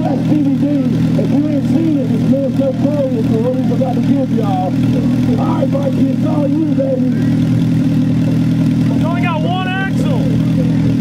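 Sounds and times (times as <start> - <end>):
car engine idling: 0.0 - 11.0
person shouting: 9.1 - 10.3.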